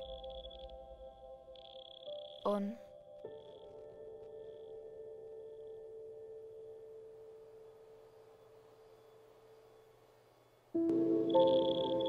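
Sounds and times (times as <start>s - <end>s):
long held pure tone: 0.0s - 12.0s.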